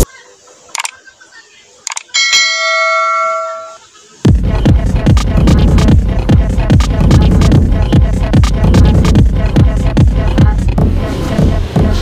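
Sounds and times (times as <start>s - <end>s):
quick clicks: 0.7s - 1.0s, 1.8s - 2.1s
bell ding: 2.2s - 3.8s
electronic music with a beat: 4.3s - 12.0s.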